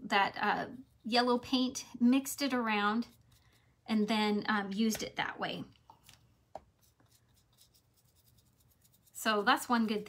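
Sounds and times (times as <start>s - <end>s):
paintbrush scratching on wood: 6.7s - 10.0s.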